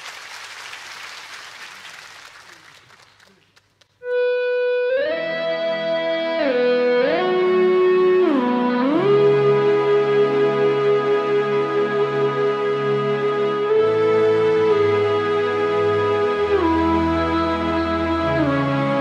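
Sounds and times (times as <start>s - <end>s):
audience applause: 0.0s - 3.8s
rock band playing sustained chords: 4.0s - 19.0s.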